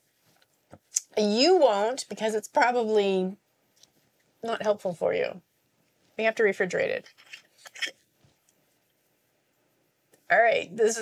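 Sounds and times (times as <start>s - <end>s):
faint short clicks and smacks: 3.7s - 4.3s.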